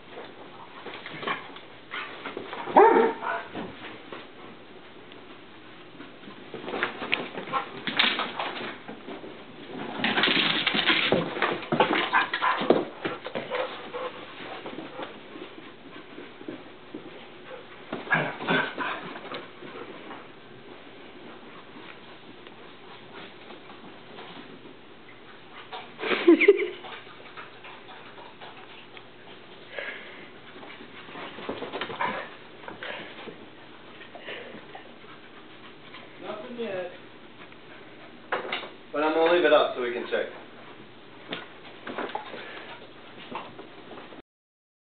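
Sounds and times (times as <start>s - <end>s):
dogs scuffling: 0.0s - 44.2s.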